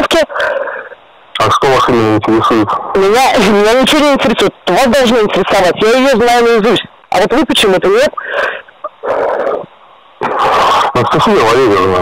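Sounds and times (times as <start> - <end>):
person breathing heavily: 8.2 - 8.8.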